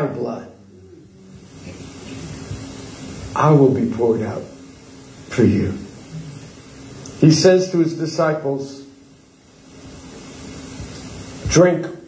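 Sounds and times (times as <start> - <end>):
faint high steady tone: 0.0 - 9.0
steady background noise: 0.0 - 12.0.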